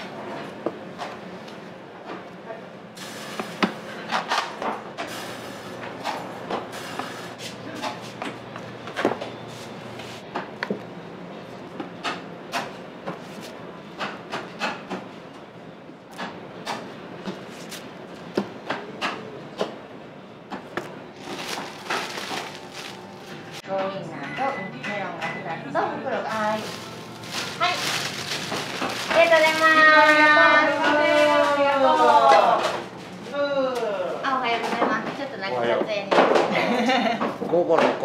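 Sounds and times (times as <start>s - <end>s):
low hum of kitchen equipment: 0.0s - 38.0s.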